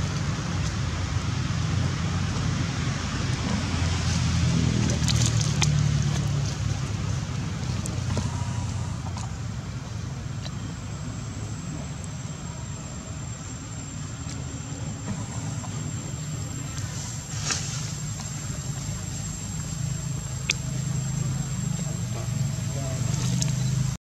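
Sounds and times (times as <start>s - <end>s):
low outdoor rumble: 0.0s - 24.0s.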